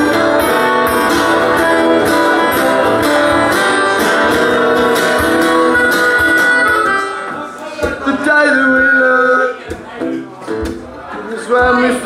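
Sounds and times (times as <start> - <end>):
acoustic guitars playing: 0.0 - 12.0.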